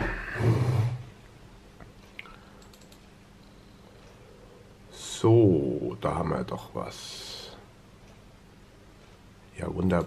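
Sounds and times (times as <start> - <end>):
man humming: 0.0 - 1.2.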